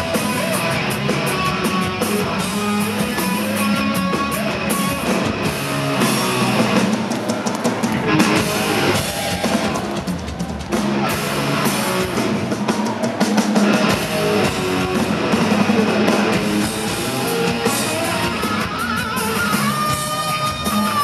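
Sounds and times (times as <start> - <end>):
electric guitar riffing: 0.0 - 6.9, 7.9 - 10.2, 13.6 - 21.0
drum kit: 0.0 - 21.0
live heavy rock band: 0.0 - 21.0.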